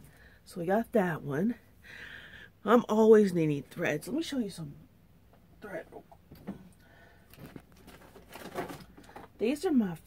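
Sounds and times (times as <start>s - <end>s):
packets rustling and knocking: 7.2s - 9.4s.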